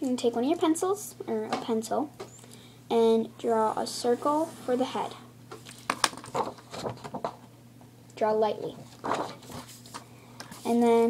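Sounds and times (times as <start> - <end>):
paper rustling: 5.6 - 7.3, 8.9 - 10.7.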